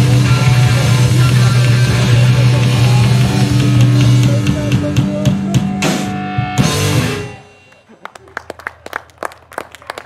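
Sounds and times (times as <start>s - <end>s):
small audience clapping: 7.7s - 10.0s.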